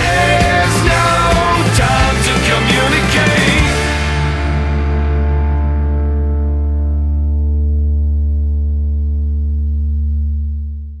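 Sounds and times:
rock band chord ringing out: 0:00.0 - 0:10.3.

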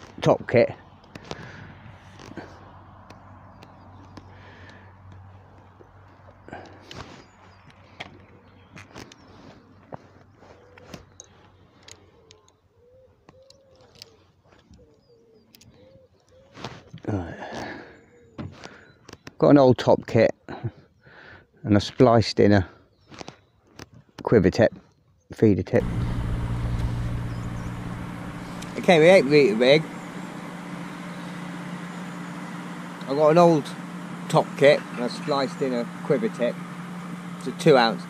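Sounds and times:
faint low hum: 0:25.8 - 0:38.0.

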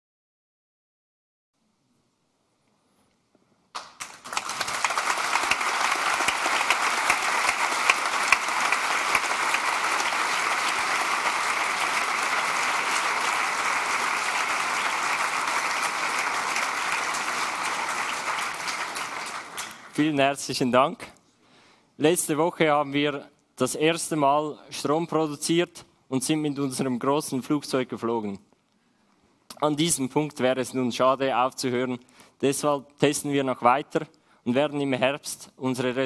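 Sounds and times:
audience applauding: 0:03.8 - 0:20.2.

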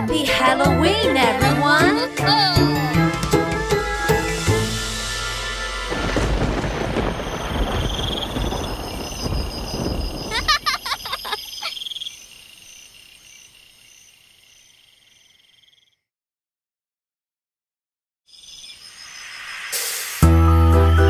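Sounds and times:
crickets chirping: 0:05.9 - 0:16.0, 0:18.3 - 0:20.3
frogs croaking: 0:06.4 - 0:16.1, 0:18.3 - 0:20.0.

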